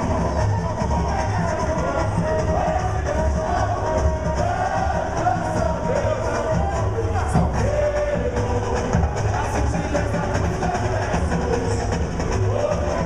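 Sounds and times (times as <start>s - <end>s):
samba drums: 0.0s - 13.0s.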